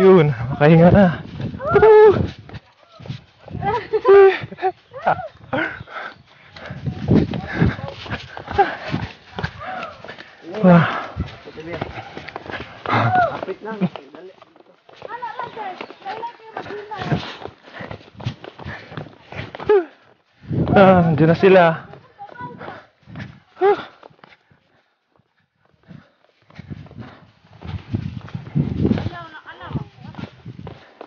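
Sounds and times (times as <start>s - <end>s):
footsteps on trail: 0.0s - 31.0s
person talking: 29.0s - 30.2s.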